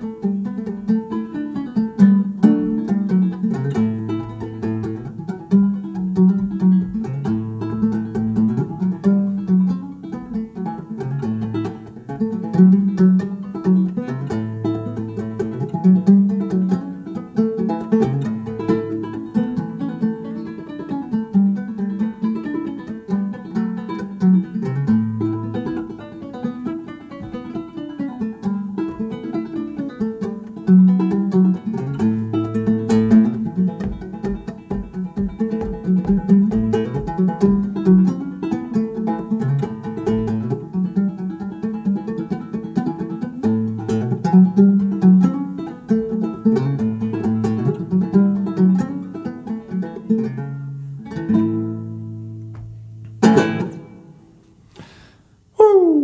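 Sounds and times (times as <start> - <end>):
banjo playing: 0.0 - 55.9.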